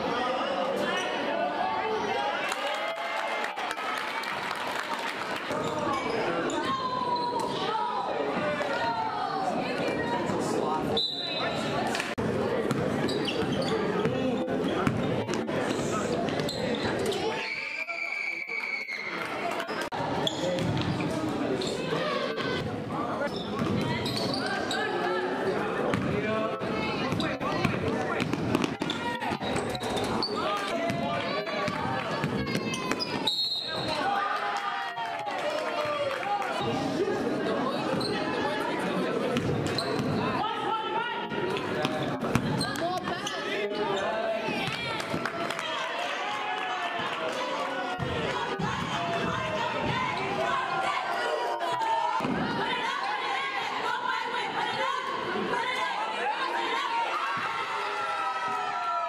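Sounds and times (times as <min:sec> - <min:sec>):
voices talking and calling out: 0:05.0 - 0:58.9.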